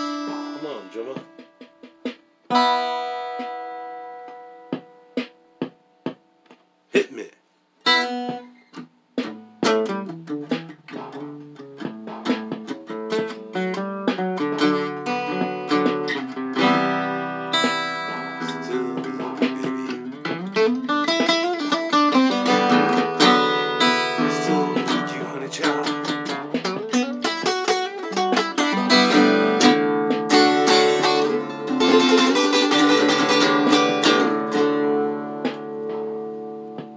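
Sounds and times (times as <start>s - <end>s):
acoustic guitar playing: 0.0s - 36.9s.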